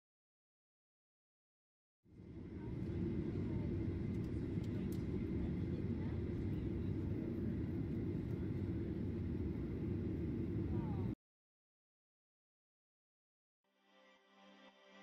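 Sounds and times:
airliner cabin engine rumble: 2.1 - 11.2.

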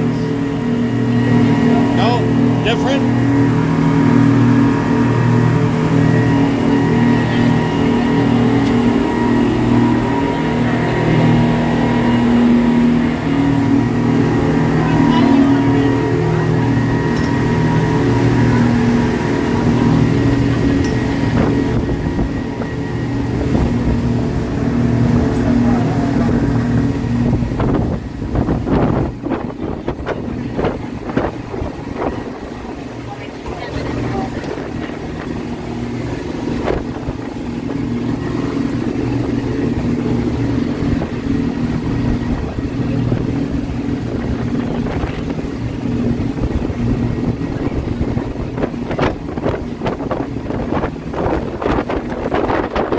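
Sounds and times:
motorboat engine droning: 0.0 - 52.9
water noise: 0.0 - 52.9
wind: 0.0 - 52.9.

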